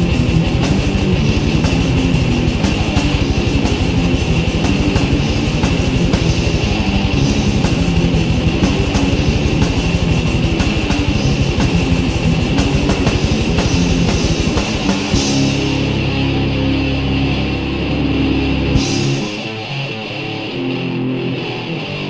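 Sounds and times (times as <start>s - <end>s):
rapid kick drum: 0.0s - 15.6s
distorted electric guitars and bass: 0.0s - 22.0s.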